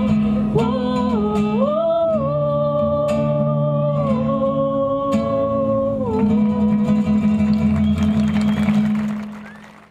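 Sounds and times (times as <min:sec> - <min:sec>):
acoustic guitar strumming: 0:00.0 - 0:09.6.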